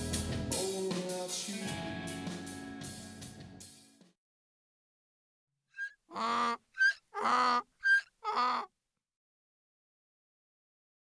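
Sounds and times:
mule braying: 5.8 - 8.7.

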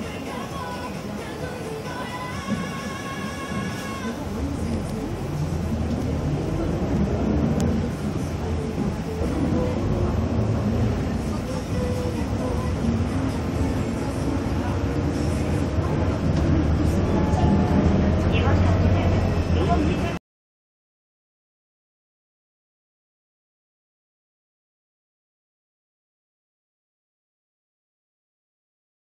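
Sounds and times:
bus engine drone: 0.0 - 20.2
indistinct voices: 0.0 - 20.2
road noise: 0.0 - 20.2.

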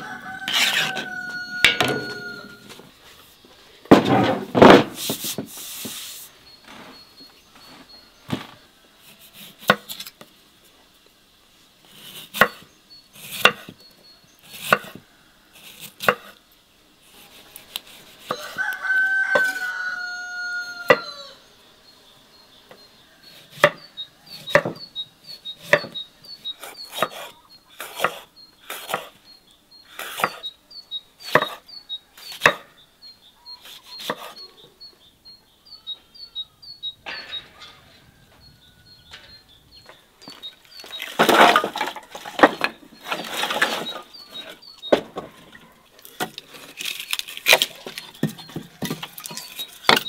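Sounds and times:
rooster crowing: 0.0 - 2.8, 18.3 - 21.5, 35.8 - 40.0
firewood clattering onto brick: 1.6 - 2.6, 3.9 - 5.5, 40.2 - 44.1, 44.9 - 50.0
faint bird chirping: 5.3 - 9.6, 19.7 - 50.0
knife chopping on wooden board: 26.6 - 29.1, 31.3 - 31.6, 32.4 - 32.7.

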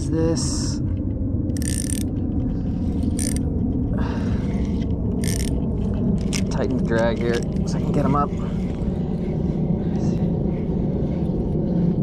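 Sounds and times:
steady low rumble: 0.0 - 12.0
reel drag buzzing: 1.5 - 2.2, 2.8 - 3.5, 4.5 - 5.6, 6.2 - 6.6
reel gears whirring: 1.5 - 2.2, 3.0 - 3.4, 5.2 - 5.6, 6.2 - 7.6.

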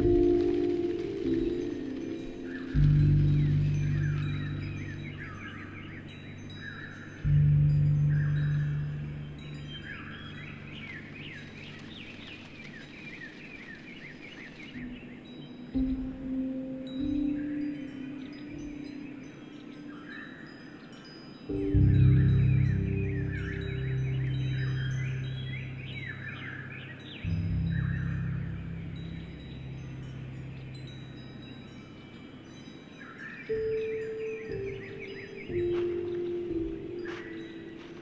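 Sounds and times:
wind chimes ringing: 0.0 - 11.7, 15.2 - 38.0
slow piano music: 0.0 - 12.5, 14.7 - 38.0
birds chirping: 0.0 - 38.0
soft steady hiss: 0.0 - 38.0.

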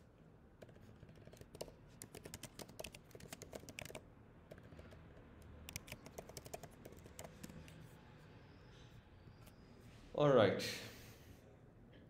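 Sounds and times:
typing on computer keyboard: 0.6 - 7.8.

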